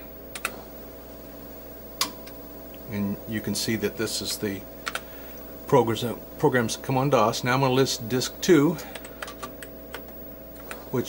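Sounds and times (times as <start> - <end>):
keyboard keystrokes clicking: 8.9 - 10.8.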